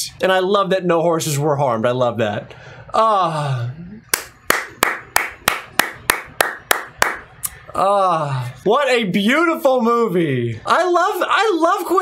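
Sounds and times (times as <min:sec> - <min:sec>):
person clapping slowly: 0:04.1 - 0:07.2.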